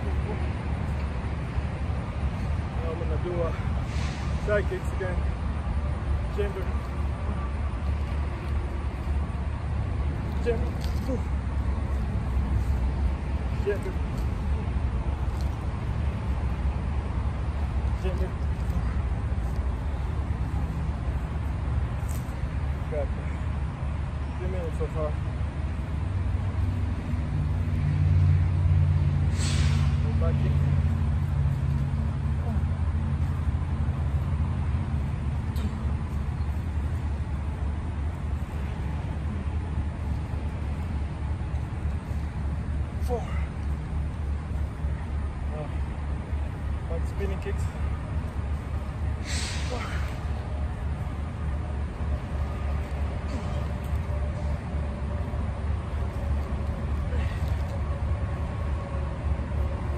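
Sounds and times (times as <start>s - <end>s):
highway traffic rumble: 0.0s - 59.9s.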